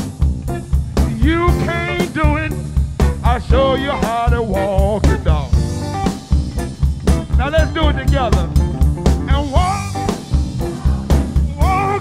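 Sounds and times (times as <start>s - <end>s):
blues band playing shuffle beat: 0.0s - 12.0s.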